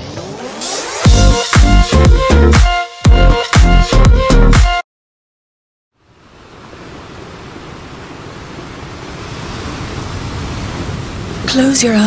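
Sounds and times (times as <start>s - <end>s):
sea waves washing: 6.0s - 12.0s.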